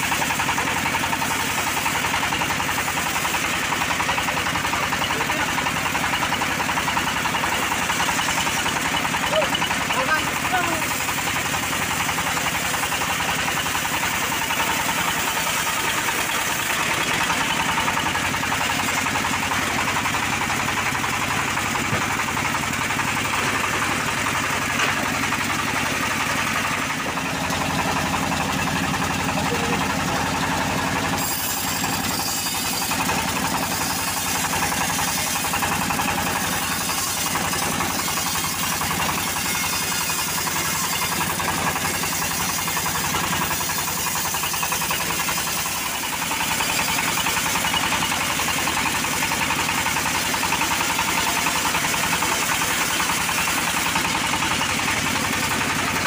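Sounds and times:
sawmill machine hum: 0.0s - 56.0s
band blade sawing through log: 31.0s - 49.3s.

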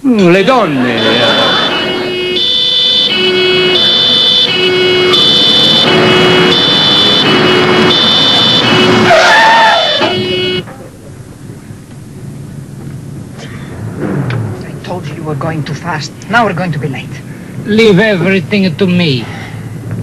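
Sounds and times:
road noise: 0.0s - 20.0s
police siren wailing: 0.4s - 10.6s.

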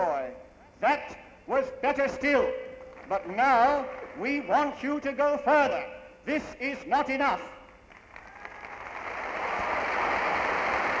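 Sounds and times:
crowd applauding: 7.9s - 11.0s.

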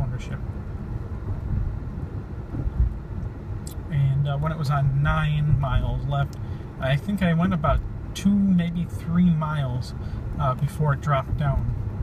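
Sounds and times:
road and tyre rumble in car: 0.0s - 12.0s.

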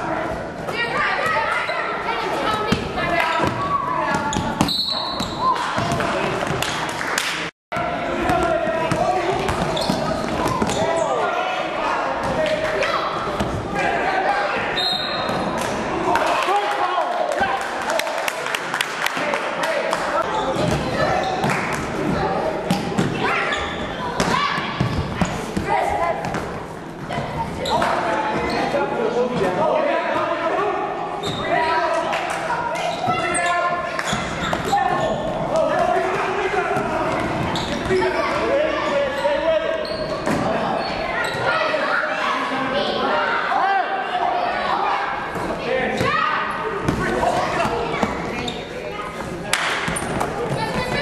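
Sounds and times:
indistinct voices in gym: 0.0s - 51.0s.

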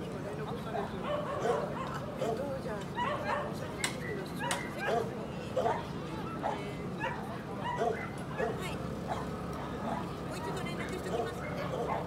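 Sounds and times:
background chatter: 0.0s - 12.0s
dog yipping: 1.0s - 2.4s, 3.0s - 5.8s, 6.4s - 9.3s.

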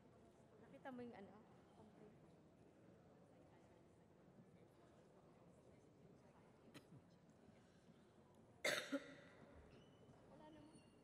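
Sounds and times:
loud cough: 8.6s - 9.2s.

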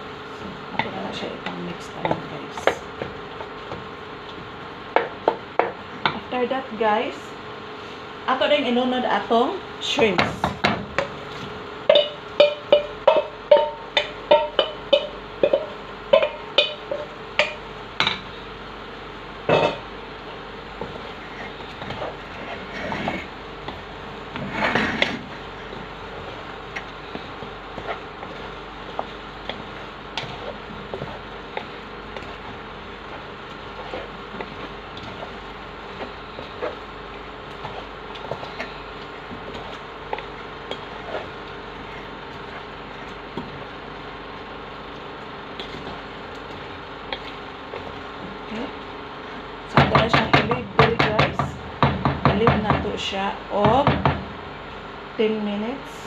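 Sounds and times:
scraping and stirring in pot: 10.0s - 53.7s.

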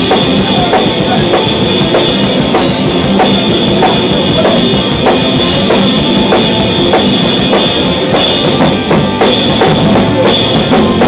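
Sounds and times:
rock drum kit played hard: 0.0s - 11.0s.

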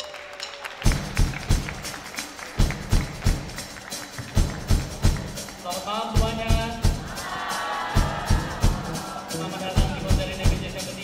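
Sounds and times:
live band playing: 0.0s - 11.0s
sharp drum hits: 4.2s - 11.0s
steady bass line: 8.0s - 11.0s.

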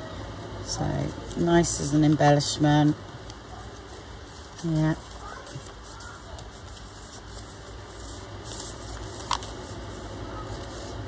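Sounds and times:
steady low hum: 0.0s - 11.0s
paper pages rustling: 1.2s - 11.0s.

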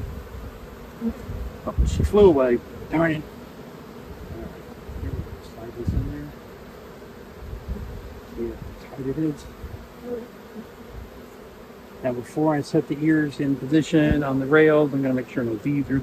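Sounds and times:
honey bees buzzing: 0.0s - 16.0s.

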